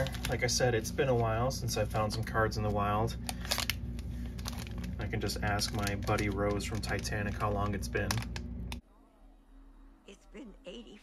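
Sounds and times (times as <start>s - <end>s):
plastic wrapper crinkling: 0.0s - 8.5s
low hum: 0.0s - 11.0s.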